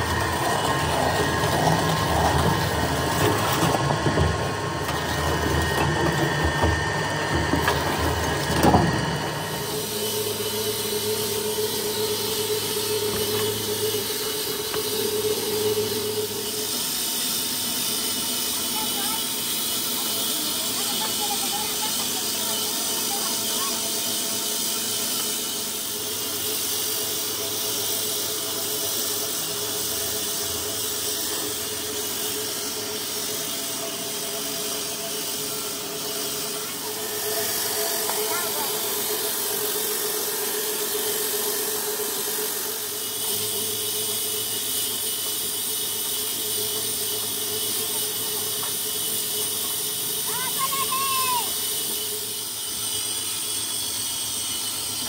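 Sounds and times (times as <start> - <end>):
metal machine running: 0.0 - 55.0.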